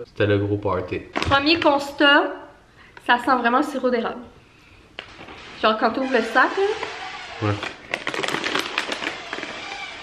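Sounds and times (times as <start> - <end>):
crackers being chewed: 7.5 - 10.0.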